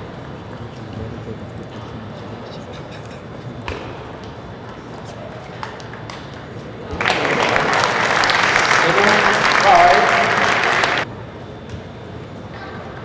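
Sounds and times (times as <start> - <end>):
crowd applause: 7.0 - 11.1.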